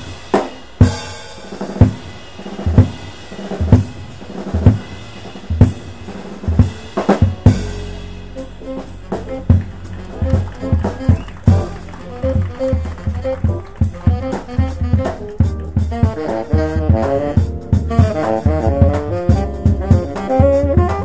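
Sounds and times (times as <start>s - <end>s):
crash cymbal: 0.0s - 10.0s
jazz drum solo: 0.0s - 21.0s
melodic notes: 7.3s - 20.2s
plucked upright bass: 7.5s - 21.0s.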